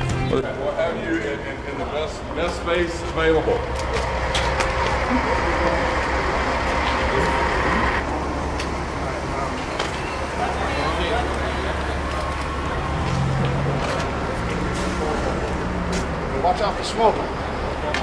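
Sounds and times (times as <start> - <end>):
indistinct voices: 0.0 - 18.0
traffic rumble: 0.0 - 18.0.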